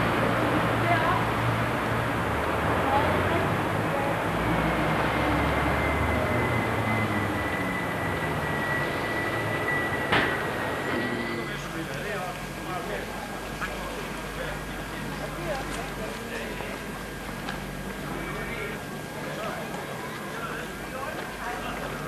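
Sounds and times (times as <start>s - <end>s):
vehicle rumble: 0.0s - 22.0s
faint voices: 10.4s - 22.0s.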